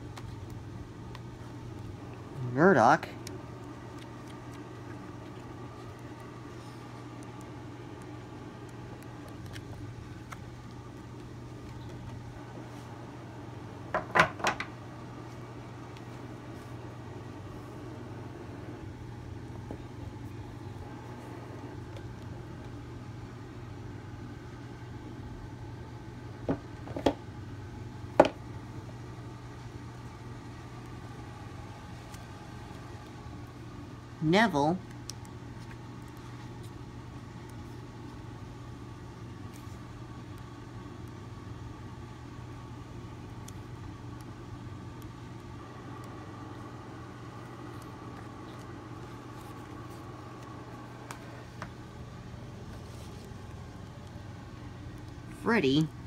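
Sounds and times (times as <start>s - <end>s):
steady low hum: 0.0s - 56.0s
book pages turning: 3.2s - 12.9s, 31.9s - 33.2s, 34.9s - 38.3s, 47.3s - 51.8s, 52.5s - 54.3s.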